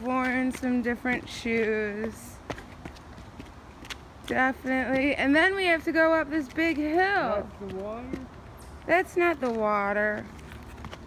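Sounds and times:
footsteps on dirt and stone: 0.0s - 5.6s, 6.4s - 11.0s
outdoor background noise: 0.0s - 11.0s.

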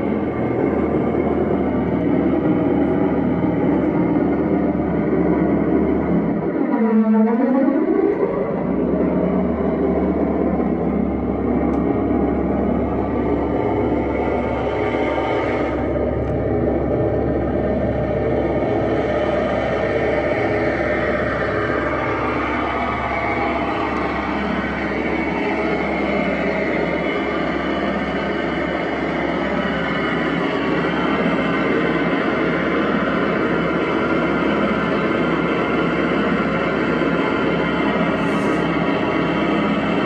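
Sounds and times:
tone sliding downward: 0.0s - 33.1s
constant low hum: 0.0s - 40.0s
rumbling electronic drone: 0.0s - 40.0s.

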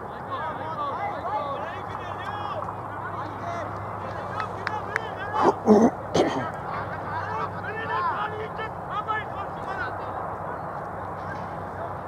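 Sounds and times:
murmuring voices: 0.0s - 12.0s.

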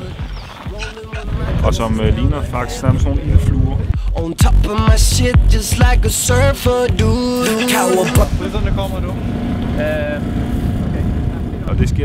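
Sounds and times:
low outdoor rumble: 3.0s - 12.0s
song with singing: 3.8s - 8.9s.

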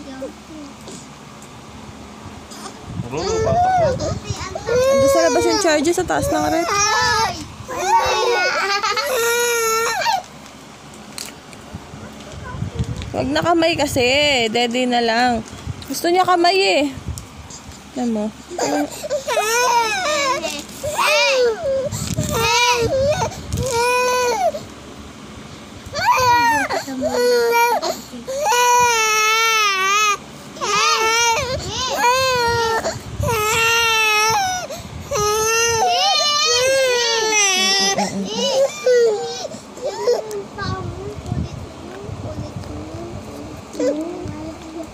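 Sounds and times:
baby wailing cry: 3.1s - 10.3s, 18.5s - 24.6s, 26.0s - 40.4s.

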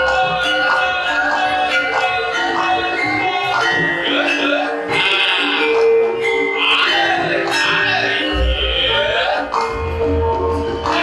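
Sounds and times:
person singing: 0.0s - 5.8s, 6.6s - 11.0s
struck metallophones: 0.0s - 11.0s.

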